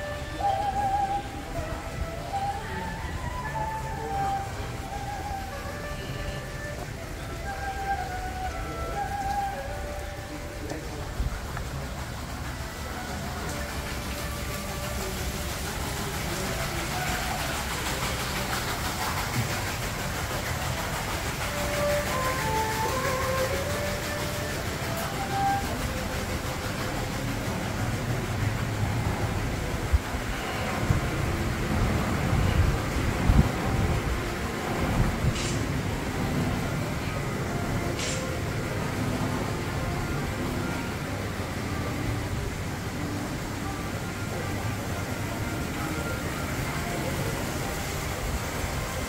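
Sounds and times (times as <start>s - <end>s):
steady rushing noise: 10.3s - 49.0s.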